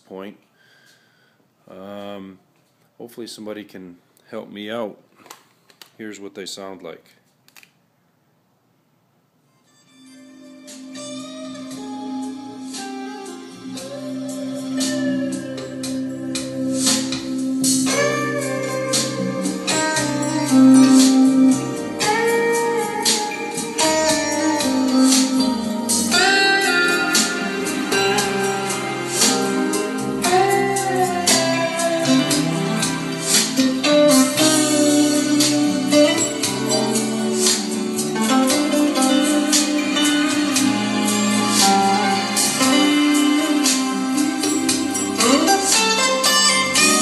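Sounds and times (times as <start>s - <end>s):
instrumental music over loudspeakers: 9.5s - 47.0s.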